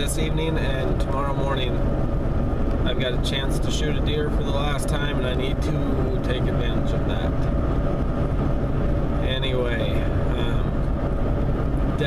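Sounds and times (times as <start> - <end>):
road noise: 0.0 - 12.0
truck engine rumble: 0.0 - 12.0.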